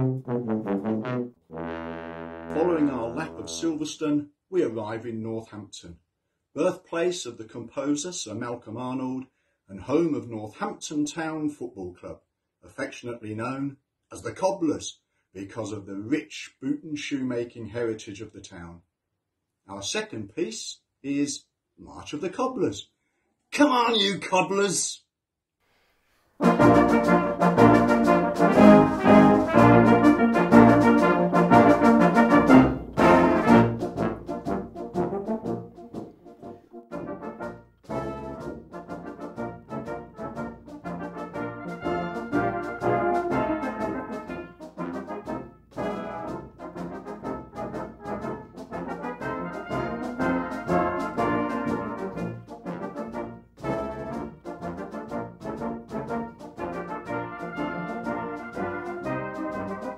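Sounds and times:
brass band playing a march: 0:00.0 - 0:03.8, 0:26.4 - 0:59.9.

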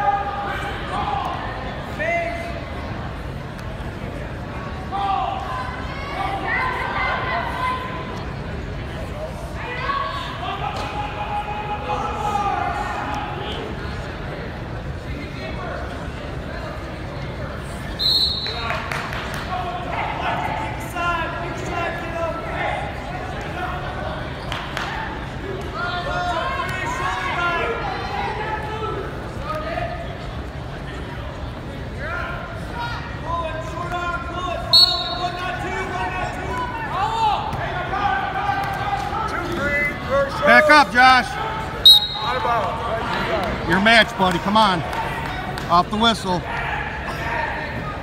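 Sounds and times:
spectators and coaches calling out: 0:00.0 - 0:48.0
referee's whistle blasts: 0:18.0 - 0:18.7, 0:34.7 - 0:35.5, 0:41.8 - 0:42.5.

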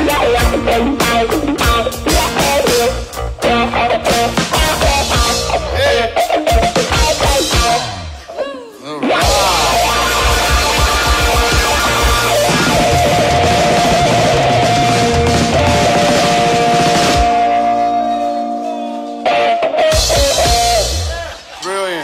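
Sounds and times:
live rock band playing: 0:00.0 - 0:08.3, 0:09.1 - 0:21.6
held guitar notes ringing: 0:09.1 - 0:21.1.

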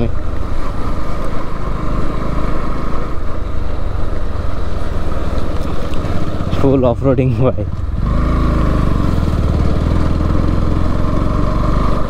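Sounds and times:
motorcycle engine running: 0:00.2 - 0:12.0.

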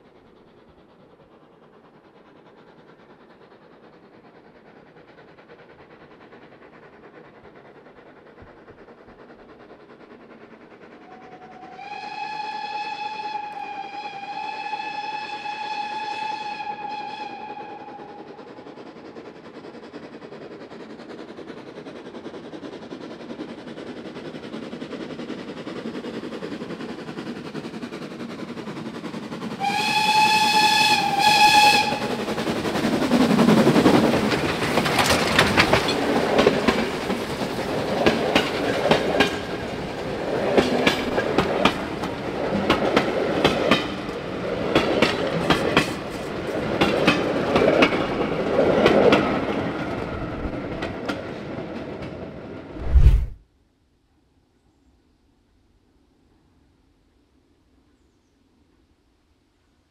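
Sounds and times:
steam train passing: 0:00.0 - 0:53.4
steam whistle blast: 0:11.7 - 0:18.2, 0:29.6 - 0:32.2
train wheels clattering over rail joints: 0:31.9 - 0:49.3.

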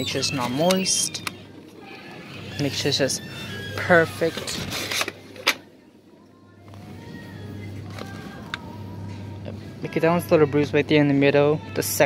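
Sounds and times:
faint background music: 0:00.0 - 0:12.0
steady low hum: 0:04.6 - 0:11.8.

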